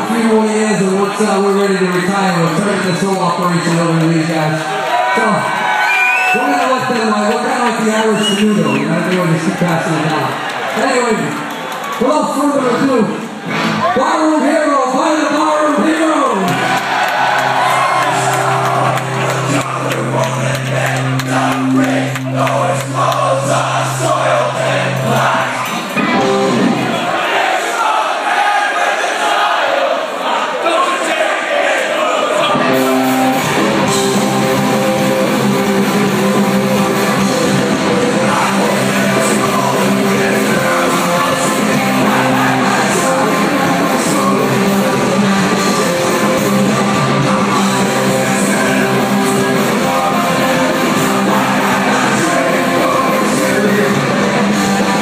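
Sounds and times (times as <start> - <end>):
crowd shouting and singing along: 0.0 - 55.0
live punk rock band playing: 16.4 - 27.0, 32.5 - 55.0.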